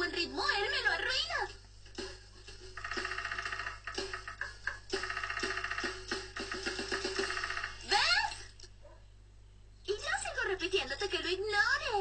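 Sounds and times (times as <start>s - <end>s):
cartoon drum kit strokes: 1.5s - 8.0s
woodpecker drumming: 1.9s - 8.0s.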